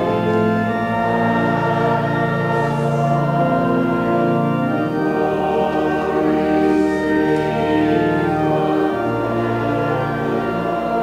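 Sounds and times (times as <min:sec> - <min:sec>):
church organ playing chords: 0:00.0 - 0:11.0.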